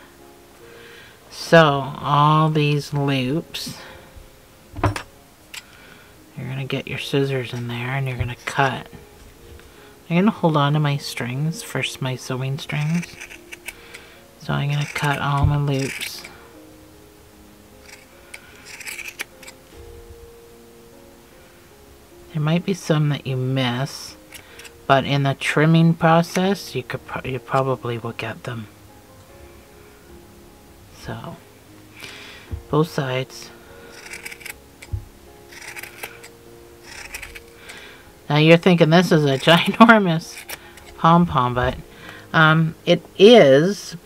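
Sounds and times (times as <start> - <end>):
soft thump: 4.8 - 5.0
scissors snipping yarn: 12.6 - 13.8, 14.6 - 16.4, 17.8 - 19.6, 33.9 - 34.9, 35.5 - 37.7, 39.1 - 41.0.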